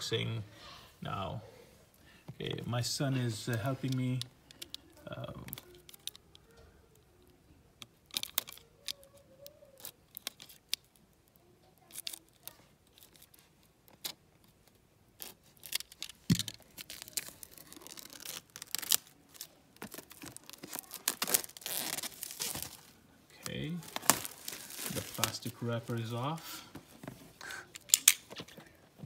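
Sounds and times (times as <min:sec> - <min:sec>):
plastic wrap tearing and crinkling: 0:03.5 - 0:07.0, 0:08.0 - 0:26.6, 0:27.5 - 0:28.4
knife slitting shrink-wrap: 0:15.2 - 0:22.9, 0:23.8 - 0:26.0.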